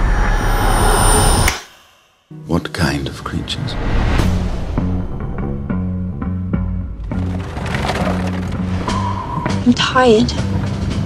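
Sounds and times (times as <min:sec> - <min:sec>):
low rumble: 0:03.6 - 0:08.8.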